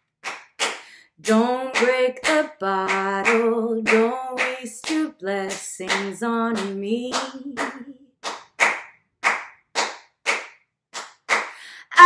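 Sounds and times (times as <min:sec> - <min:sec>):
hands clapping a rhythm: 0:00.0 - 0:12.0.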